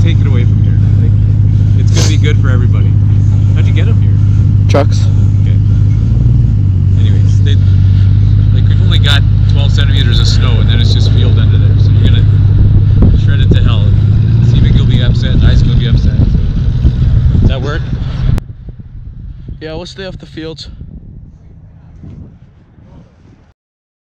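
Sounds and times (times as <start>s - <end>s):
dirt bike engine idling: 0.0s - 21.3s.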